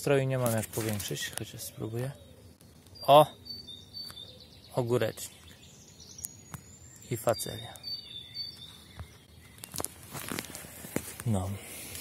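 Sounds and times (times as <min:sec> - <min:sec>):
footsteps on soil: 0:08.6 - 0:12.0.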